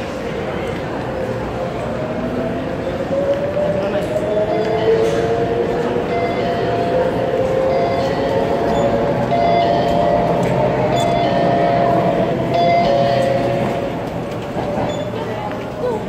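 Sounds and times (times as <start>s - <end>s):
electric train running: 0.3s - 15.8s.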